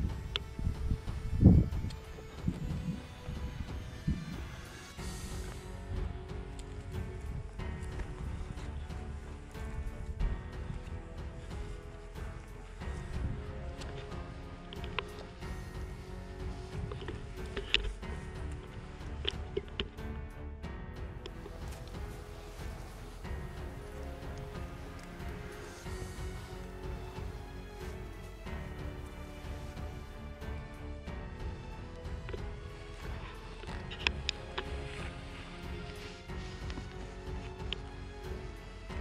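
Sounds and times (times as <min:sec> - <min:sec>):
footsteps on soil: 0:00.0 - 0:20.1, 0:21.0 - 0:30.8, 0:31.4 - 0:39.0
background music with held tones: 0:00.0 - 0:39.0.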